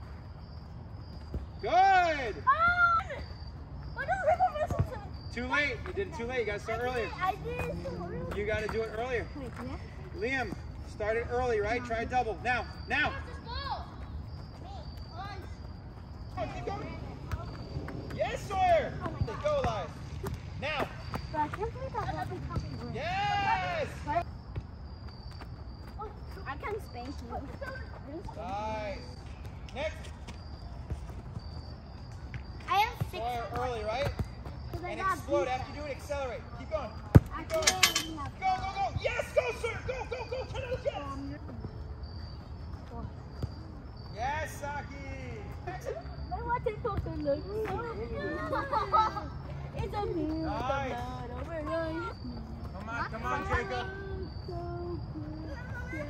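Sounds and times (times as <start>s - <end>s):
crickets chirping: 0.0s - 56.0s
soccer ball thuds on turf: 37.1s - 37.4s
faint children's voices: 53.6s - 56.0s.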